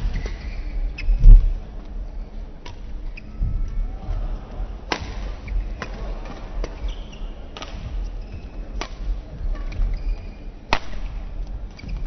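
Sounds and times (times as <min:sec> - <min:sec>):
low rumble of sports hall: 0:00.0 - 0:12.0
racket hitting shuttlecock: 0:04.9 - 0:06.9, 0:07.6 - 0:07.9, 0:08.8 - 0:09.1, 0:10.7 - 0:11.9.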